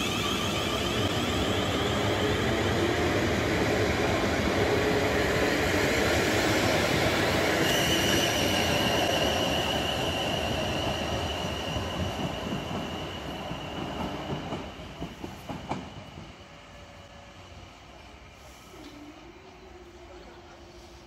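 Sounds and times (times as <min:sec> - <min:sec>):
train wheels clicking: 0:10.7 - 0:16.4.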